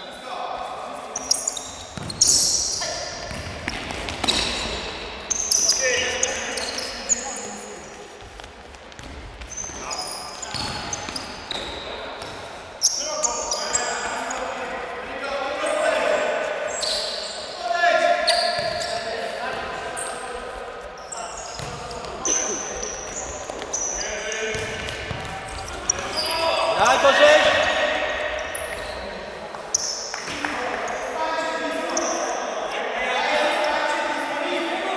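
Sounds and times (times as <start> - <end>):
sneakers squeaking on court: 1.0 - 14.9, 15.6 - 32.4
ball kicks: 21.6 - 22.2.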